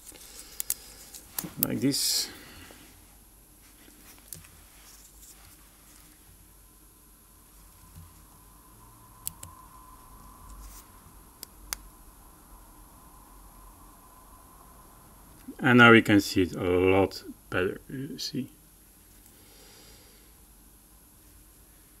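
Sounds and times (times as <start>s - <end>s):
watch handling noise: 0.0s - 1.7s.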